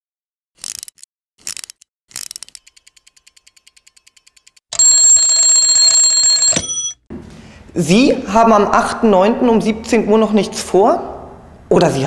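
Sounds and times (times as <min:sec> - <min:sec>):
timer winding ratchet clicks: 0:00.6 - 0:04.6
bell ringing: 0:02.7 - 0:07.0.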